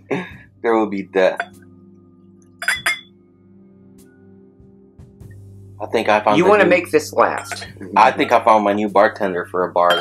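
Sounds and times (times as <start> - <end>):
faint background music: 0.0 - 10.0
glasses clinking: 2.6 - 3.1, 6.4 - 8.4, 9.8 - 10.0.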